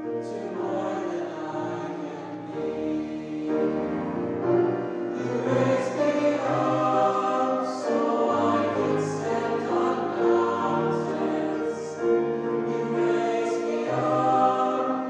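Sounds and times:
choir singing in harmony: 0.0 - 15.0.

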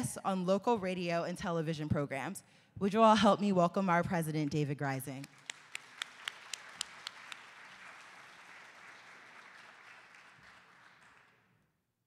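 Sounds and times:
audience applauding: 5.2 - 11.5.

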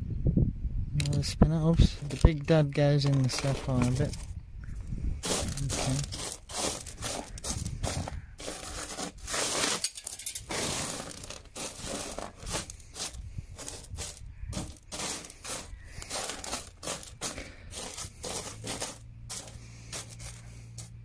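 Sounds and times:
pebbles scraping and clicking: 1.0 - 4.3, 5.2 - 21.0.

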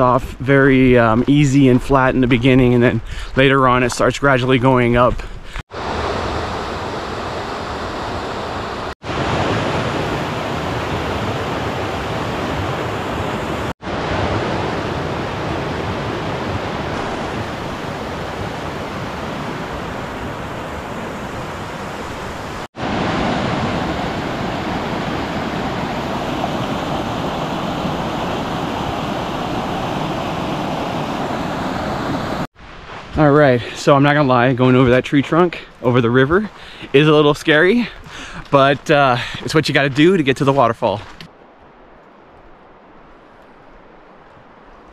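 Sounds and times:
river rushing over rocks: 16.7 - 32.5.

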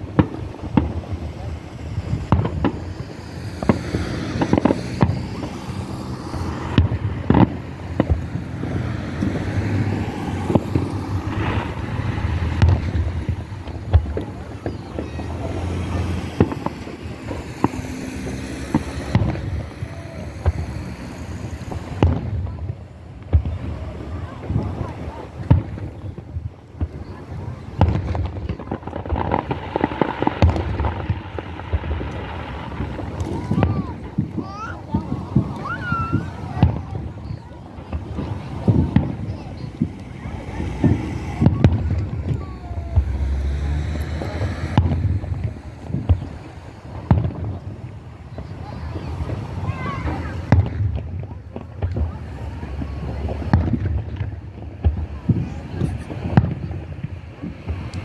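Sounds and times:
fireworks booming and crackling: 0.0 - 58.0
wind on microphone: 0.0 - 58.0.

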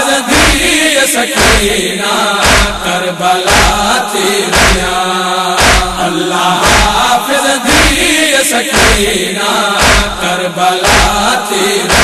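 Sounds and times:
voices chanting a lament: 0.0 - 12.0
deep rhythmic thump: 1.4 - 1.8, 2.4 - 2.9, 3.5 - 5.0, 5.6 - 7.1, 8.7 - 9.2, 9.8 - 12.0.

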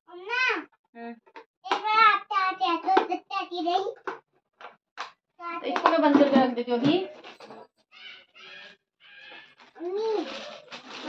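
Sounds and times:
plastic bag crinkling: 9.1 - 11.0
small child's wordless vocal sound: 9.3 - 11.0.

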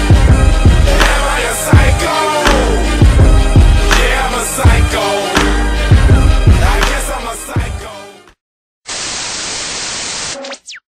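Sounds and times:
static hiss: 8.9 - 10.6
electronic zaps: 9.6 - 10.9.

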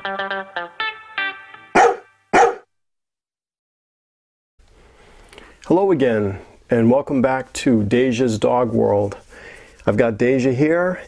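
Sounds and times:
plucked guitar music: 0.0 - 1.9
small dog barking: 1.8 - 2.6.

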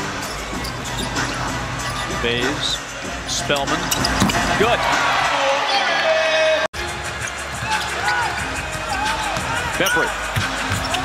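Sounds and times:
arena noise: 0.0 - 11.0.

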